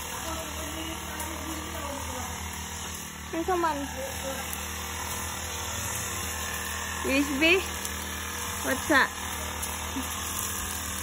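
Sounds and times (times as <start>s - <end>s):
brush cutter engine running: 0.0s - 11.0s.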